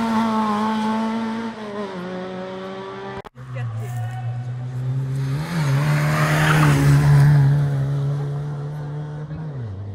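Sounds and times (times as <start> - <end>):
rally car passing at high revs: 0.0 - 3.6, 4.2 - 9.9.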